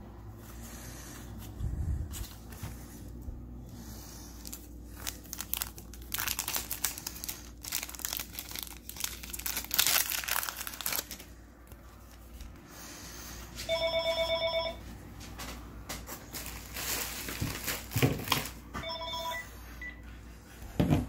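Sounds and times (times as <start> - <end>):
foil wrapper tearing and crinkling: 4.4 - 12.4, 16.3 - 18.6
phone ringer trilling: 13.7 - 14.8, 18.8 - 19.6.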